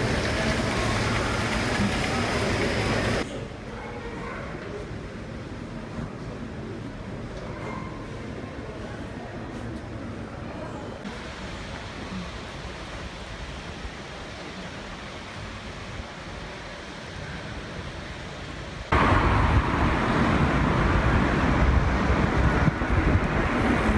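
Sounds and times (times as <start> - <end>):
loud steady noise: 0.0 - 3.3
traffic and air hum: 0.0 - 23.9.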